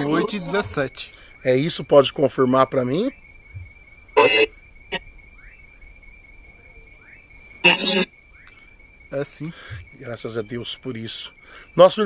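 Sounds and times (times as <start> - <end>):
high insect trill: 0.0 - 12.0.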